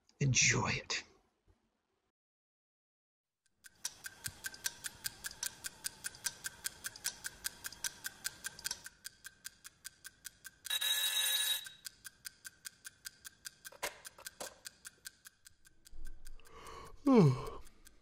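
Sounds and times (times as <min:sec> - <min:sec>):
mechanical alarm clock ticking: 0:03.5 - 0:18.0
alarm clock ringing: 0:10.7 - 0:12.0.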